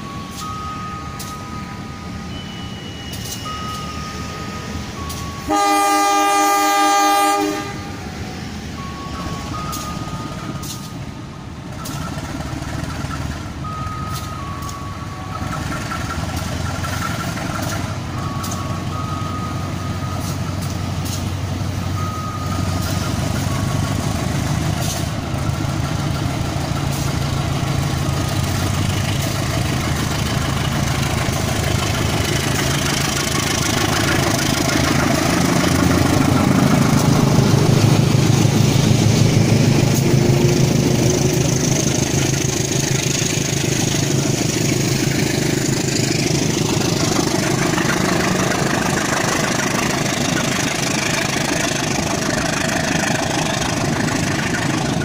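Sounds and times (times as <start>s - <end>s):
locomotive diesel engine: 0.0s - 55.0s
locomotive horn blast: 5.4s - 8.2s.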